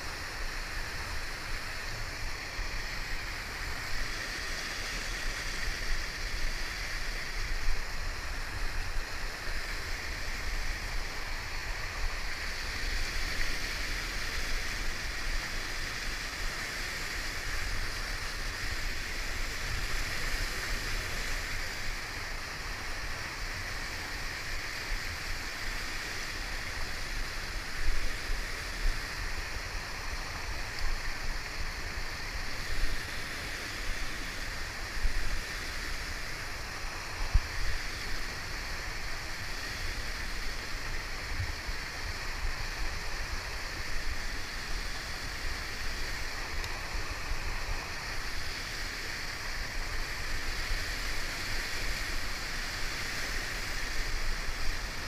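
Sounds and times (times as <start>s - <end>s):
whitewater rapids rushing: 0.0s - 55.0s.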